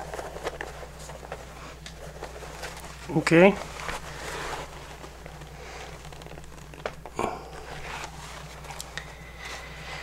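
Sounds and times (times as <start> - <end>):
scuff: 0.0 - 5.2
hands rustling hide: 0.0 - 10.0
steady low hum: 0.0 - 10.0.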